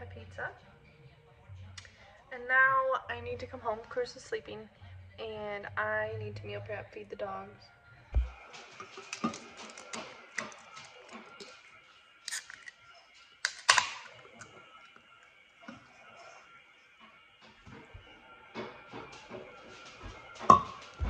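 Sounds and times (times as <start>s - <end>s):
can pull tab snapping open: 12.3s - 12.8s, 13.4s - 14.1s.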